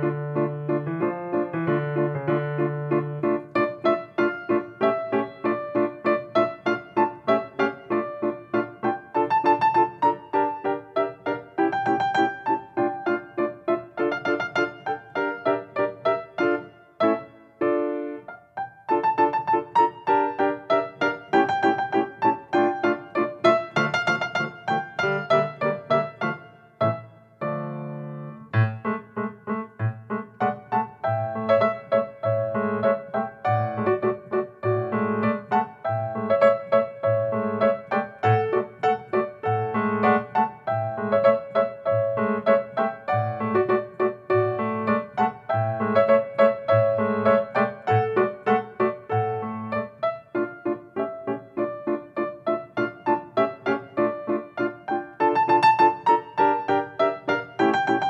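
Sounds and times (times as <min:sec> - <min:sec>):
piano piece: 0:00.0 - 0:58.0.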